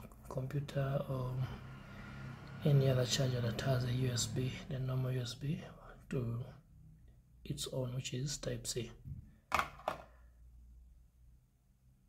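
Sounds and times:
cable knocking on desk: 9.5 - 10.0.

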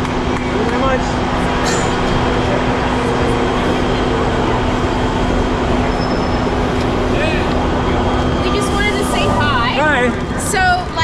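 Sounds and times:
bus engine low hum: 0.0 - 11.0
street traffic noise: 0.0 - 11.0.

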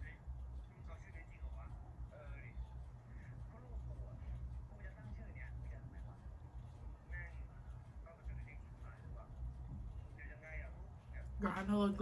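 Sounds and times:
faint distant speech: 0.0 - 12.0.

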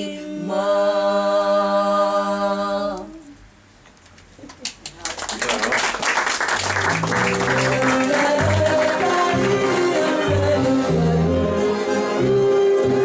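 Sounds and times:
applause: 4.5 - 10.5
accordion music with bass: 6.8 - 13.0.

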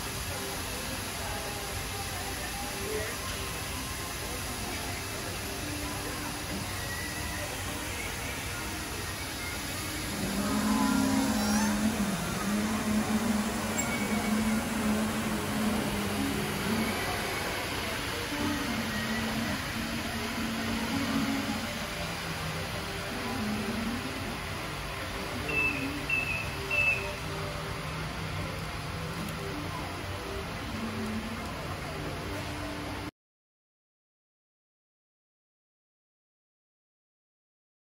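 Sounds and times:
store background hum: 0.0 - 33.1.

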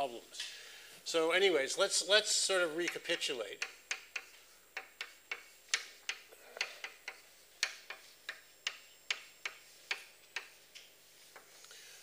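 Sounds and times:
chalk clicking on blackboard: 2.6 - 11.7.

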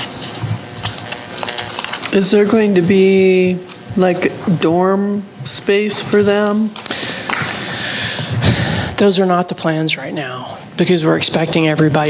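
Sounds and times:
large hall room noise: 0.0 - 12.0.

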